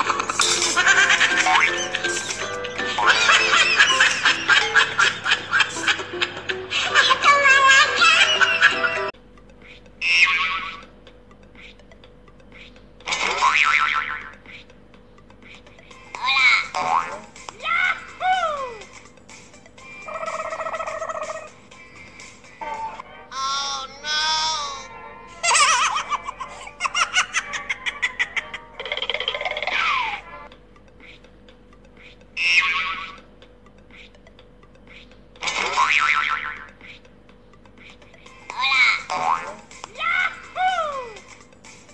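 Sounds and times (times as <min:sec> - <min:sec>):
lively comic music: 0:00.0 - 0:41.9
cartoon boing sound effect: 0:13.1 - 0:14.4, 0:16.2 - 0:17.2, 0:32.4 - 0:33.2, 0:35.4 - 0:36.7, 0:38.5 - 0:39.6.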